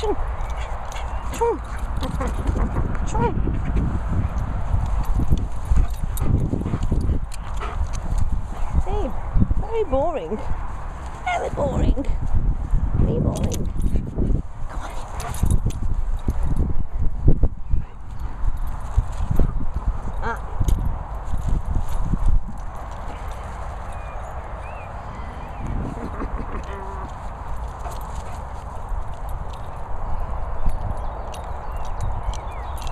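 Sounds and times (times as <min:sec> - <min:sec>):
dogs moving on grass: 0:03.7 - 0:16.7, 0:18.0 - 0:32.9.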